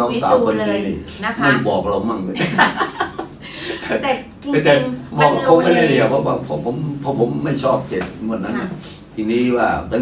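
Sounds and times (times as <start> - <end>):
people talking: 0.0 - 2.7, 3.8 - 10.0.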